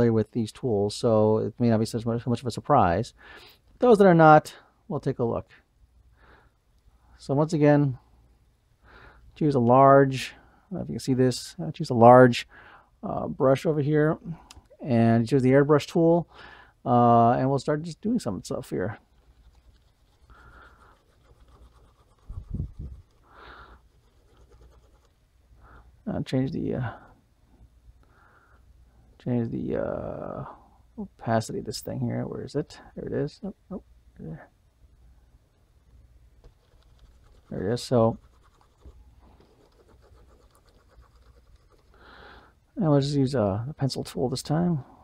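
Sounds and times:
stylus scratching on tablet: 19.0s - 25.2s, 36.4s - 42.0s.

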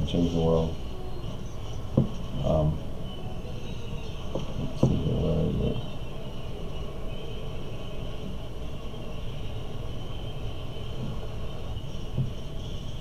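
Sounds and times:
faint high-pitched whine: 0.0s - 13.0s
low room rumble: 0.0s - 13.0s
low voice hum: 0.0s - 13.0s.

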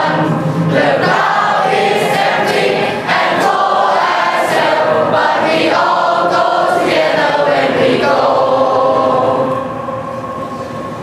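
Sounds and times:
group singing in unison: 0.0s - 11.0s.

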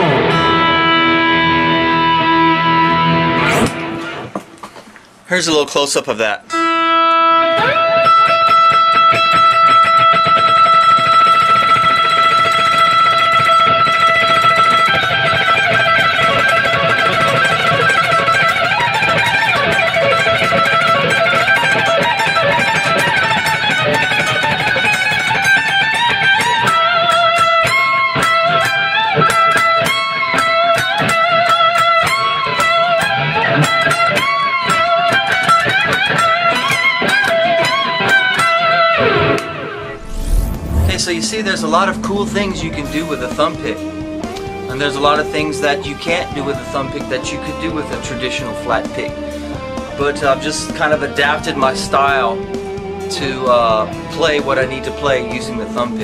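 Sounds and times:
electric guitar fast picking: 0.0s - 4.3s, 6.6s - 56.0s.

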